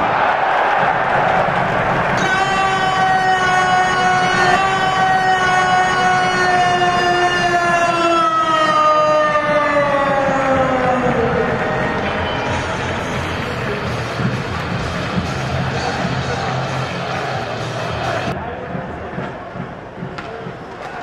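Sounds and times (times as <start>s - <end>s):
crowd noise: 0.0s - 21.0s
arena goal horn: 2.1s - 8.9s.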